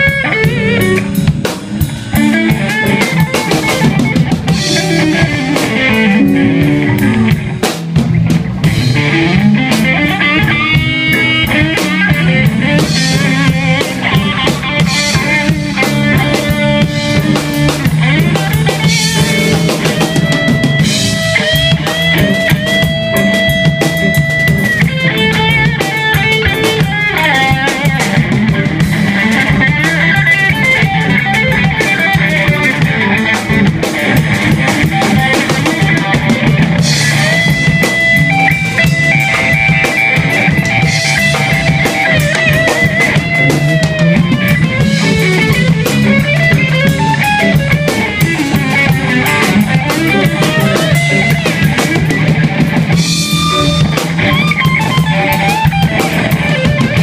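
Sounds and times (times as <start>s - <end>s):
electric guitar lead lines: 0.0s - 57.0s
low accompaniment: 0.0s - 57.0s
steady drum kit: 0.0s - 57.0s.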